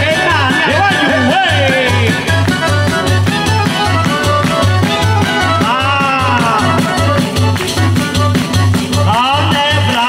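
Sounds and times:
accordion: 0:00.0 - 0:10.0
guitars: 0:00.0 - 0:10.0
jingling frame drum: 0:00.0 - 0:10.0.

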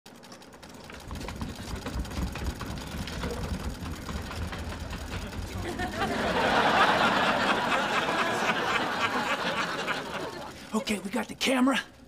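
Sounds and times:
sewing machines clicking: 0:00.1 - 0:11.8.

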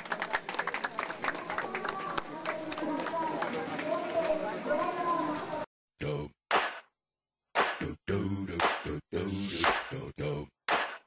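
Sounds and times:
overlapping chatter: 0:00.0 - 0:05.7
people clapping: 0:00.0 - 0:05.7, 0:06.5 - 0:06.8, 0:07.6 - 0:07.8, 0:08.6 - 0:08.8, 0:10.7 - 0:11.0.

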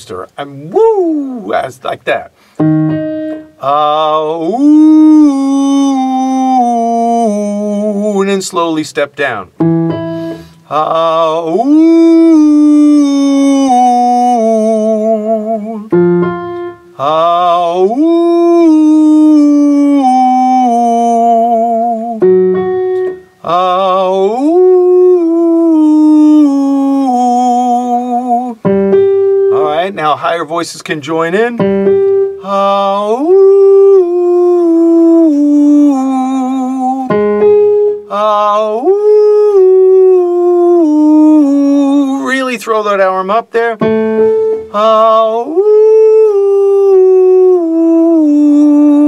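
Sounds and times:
man singing vocal exercise: 0:00.0 - 0:02.4, 0:03.4 - 0:16.2, 0:16.9 - 0:22.4, 0:23.0 - 0:28.8, 0:29.5 - 0:31.7, 0:32.4 - 0:37.4, 0:38.0 - 0:49.0
man whooping: 0:00.6 - 0:01.6, 0:38.1 - 0:42.4, 0:45.2 - 0:49.0
keyboard note: 0:02.6 - 0:03.6, 0:09.6 - 0:10.6, 0:15.9 - 0:16.9, 0:22.2 - 0:23.4, 0:31.6 - 0:32.4, 0:43.8 - 0:44.8
sustained keyboard note: 0:02.6 - 0:03.6, 0:09.6 - 0:10.5, 0:43.8 - 0:45.1.

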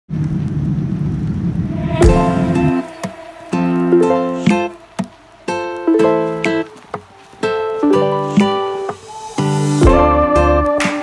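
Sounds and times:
airliner engines and airflow rumble: 0:00.1 - 0:10.0.

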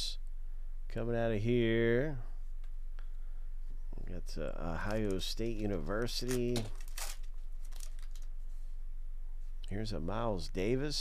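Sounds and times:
low electrical hum: 0:00.0 - 0:11.0
foil wrapper crinkling: 0:04.8 - 0:08.3.

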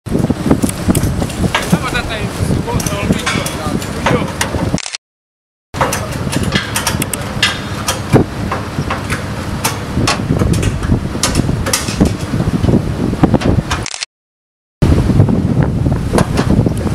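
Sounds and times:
wind buffeting microphone: 0:00.0 - 0:04.8, 0:05.8 - 0:13.9, 0:14.8 - 0:16.9
gas cylinders clinking: 0:02.6 - 0:04.6, 0:05.8 - 0:12.4.

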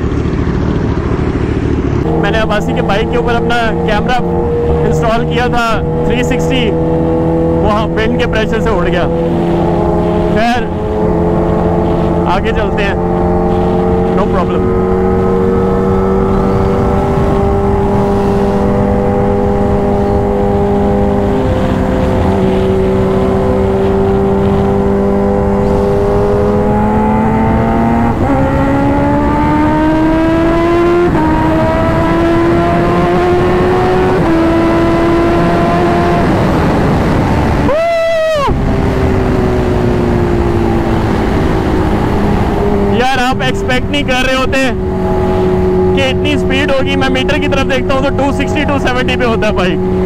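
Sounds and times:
motorcycle engine accelerating: 0:00.0 - 0:50.0.

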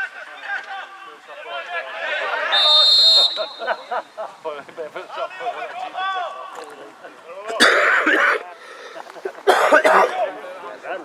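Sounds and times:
person coughing: 0:07.6 - 0:08.4, 0:09.5 - 0:10.1.

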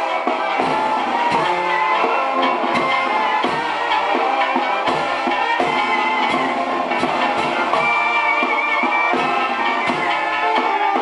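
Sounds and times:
cymbal strikes: 0:00.0 - 0:11.0
drum beats: 0:00.0 - 0:11.0
trombones and clarinet chords: 0:00.0 - 0:11.0.

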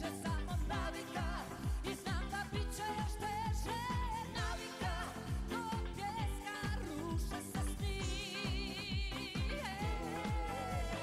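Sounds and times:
band with steady drum beat: 0:00.0 - 0:11.0
woman singing with vibrato: 0:00.0 - 0:11.0.

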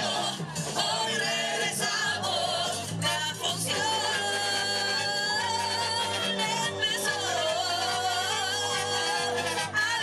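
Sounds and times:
band accompaniment: 0:00.0 - 0:10.0
chorus singing: 0:00.0 - 0:10.0.

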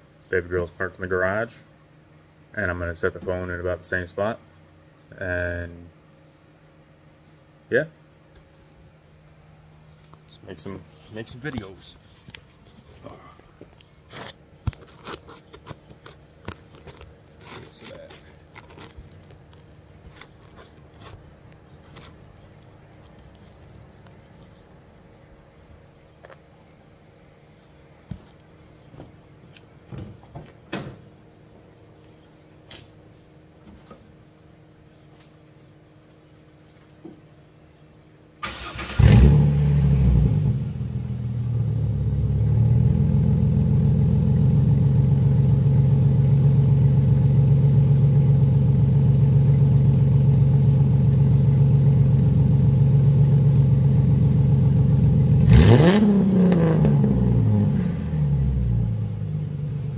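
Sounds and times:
car engine starting and idling: 0:38.4 - 0:59.9.

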